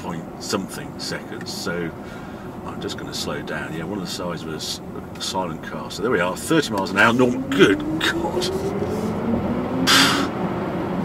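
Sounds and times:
road and tyre noise: 0.0 - 11.0
electric motor whine rising: 7.1 - 11.0.

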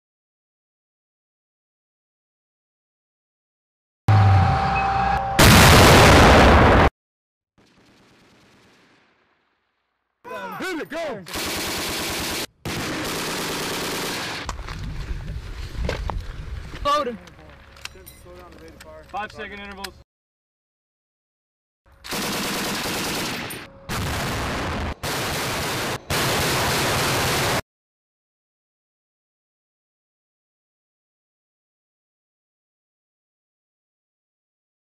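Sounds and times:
distorted automatic gunfire: 7.6 - 9.4, 11.3 - 14.5, 22.1 - 27.6
machine gun firing bursts: 11.3 - 14.5, 22.1 - 27.6.

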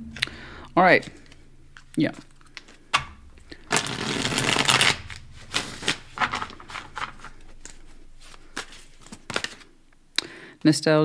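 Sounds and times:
cards being shuffled: 3.7 - 9.7.

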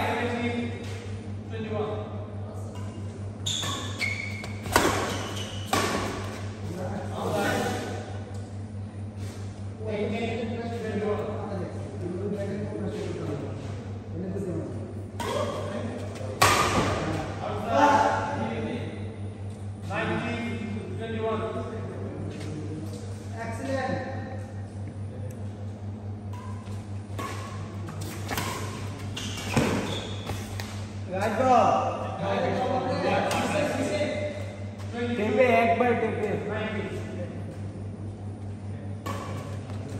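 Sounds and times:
steady low hum: 0.0 - 39.9
racket striking shuttlecock: 4.4 - 6.5, 16.4 - 17.1, 26.3 - 30.9
people talking: 6.6 - 8.1, 9.8 - 19.0, 19.8 - 24.2, 31.1 - 37.8.

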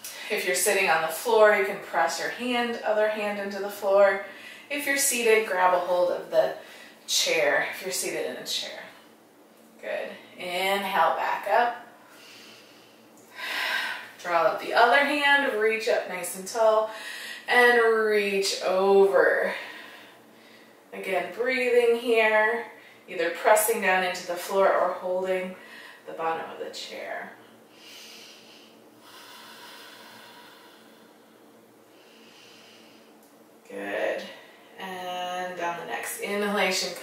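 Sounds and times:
woman breathing: 4.2 - 4.7, 6.6 - 7.0, 12.0 - 14.2, 16.9 - 17.5, 19.4 - 20.9, 25.5 - 26.1, 27.7 - 33.2
woman breathing out: 27.8 - 31.4.

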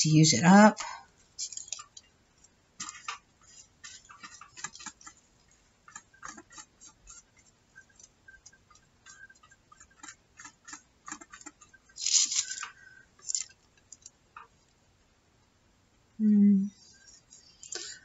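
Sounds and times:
paper crackles and ticks: 1.4 - 14.5
brush spreading glue on paper: 2.8 - 8.2
paper rustling: 12.0 - 13.6.

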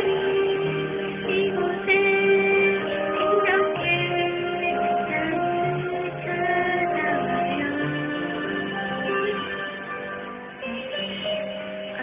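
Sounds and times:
woman singing into a microphone: 0.0 - 9.8, 10.6 - 12.0
karaoke backing track: 0.0 - 12.0.

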